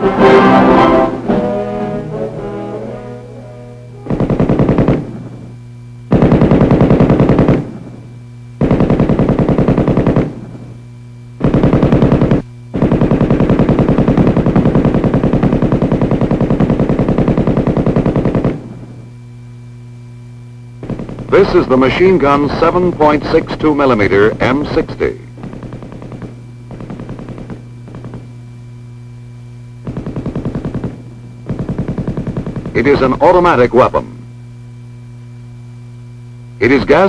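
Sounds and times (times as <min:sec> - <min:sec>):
low soundtrack hum: 0:00.0 - 0:37.0
machine gun automatic fire: 0:04.0 - 0:08.0, 0:08.6 - 0:10.7, 0:11.4 - 0:19.0, 0:20.8 - 0:28.4, 0:29.8 - 0:33.9.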